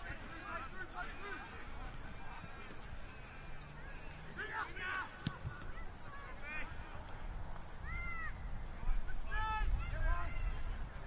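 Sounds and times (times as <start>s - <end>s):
distant shouts from players: 0.0s - 7.1s, 7.8s - 11.0s.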